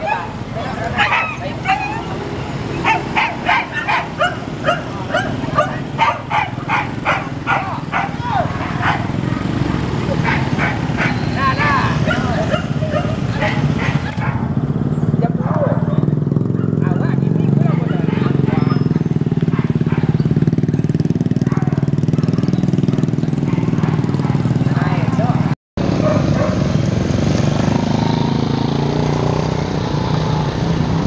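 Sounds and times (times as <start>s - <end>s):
dog whining: 0.0s - 9.1s, 10.2s - 14.4s
dogs barking and yipping: 0.0s - 25.0s, 25.8s - 26.8s
motorcycle engine hum: 0.0s - 31.0s.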